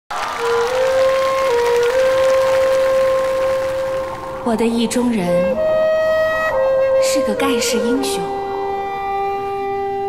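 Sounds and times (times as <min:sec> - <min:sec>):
audience applause: 0:00.1 - 0:04.5.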